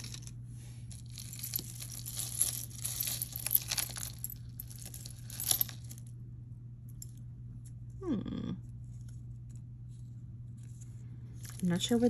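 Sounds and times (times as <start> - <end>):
jewelry clinking and rustling: 0.0 - 6.1, 10.6 - 12.0.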